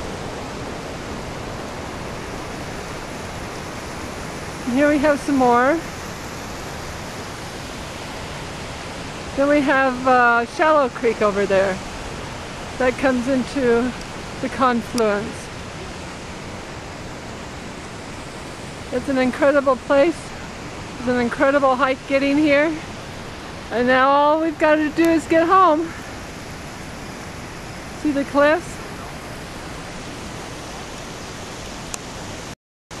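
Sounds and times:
creek rushing: 0.0 - 33.0.

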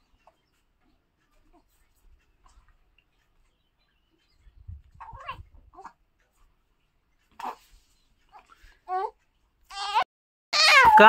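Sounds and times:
baby cooing: 5.0 - 6.0, 7.4 - 7.6, 8.3 - 11.0.

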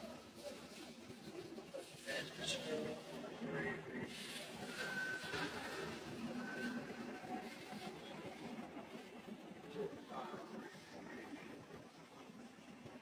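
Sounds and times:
indistinct background chatter: 0.0 - 13.0.

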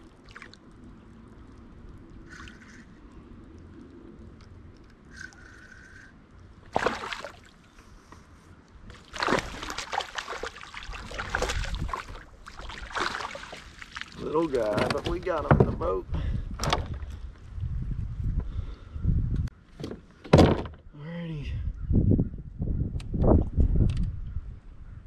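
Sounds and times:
fish splashing at water surface: 6.6 - 7.6, 8.9 - 14.2.

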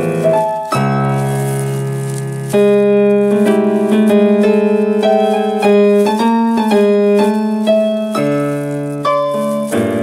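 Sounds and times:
keyboard playing piano chords: 0.0 - 10.0.

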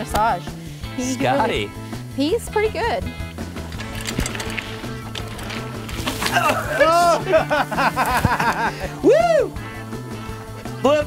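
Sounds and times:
theme music with bass line: 0.0 - 11.0.

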